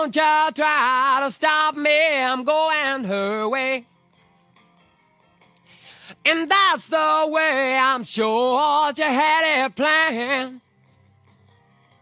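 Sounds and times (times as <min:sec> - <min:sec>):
person singing: 0:00.0 - 0:03.8, 0:06.1 - 0:10.6
faint backing instruments: 0:00.0 - 0:12.0.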